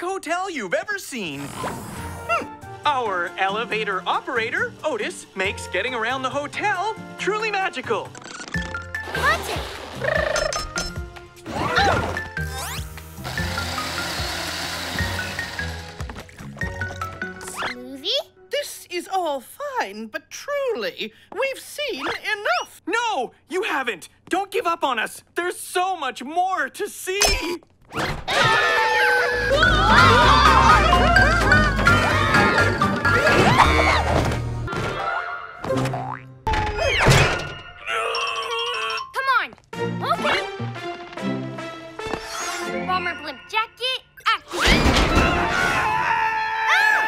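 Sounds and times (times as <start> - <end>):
cartoon background music: 1.2 - 19.0, 28.5 - 46.1
blender whirring: 12.8 - 16.1.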